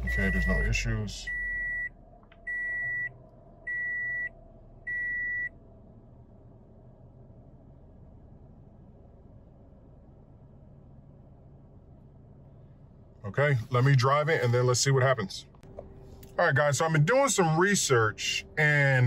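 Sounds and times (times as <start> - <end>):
car warning chime beeping: 0.0 - 5.6
car engine idling: 0.0 - 19.0.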